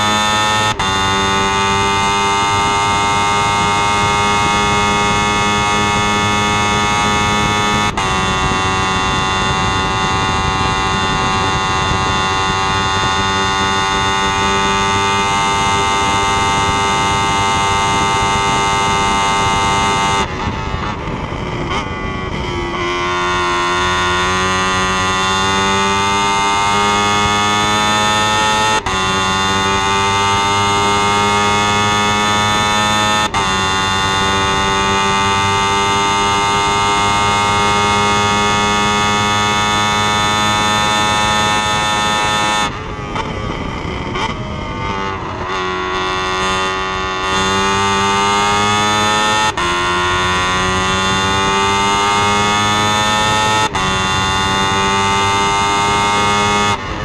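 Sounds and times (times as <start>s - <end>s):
racing car engine revving: 0.0s - 57.0s.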